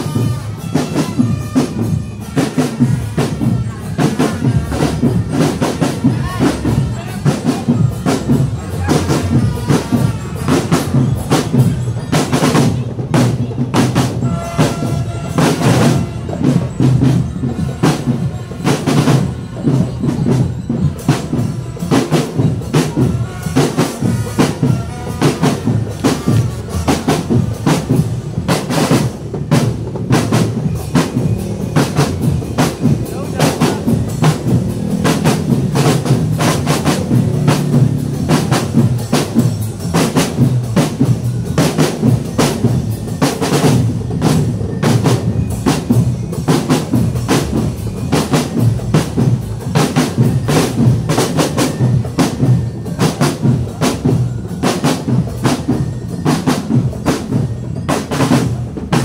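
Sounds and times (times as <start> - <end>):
marching drums: 0.0 - 59.0
bass drum: 22.4 - 41.3.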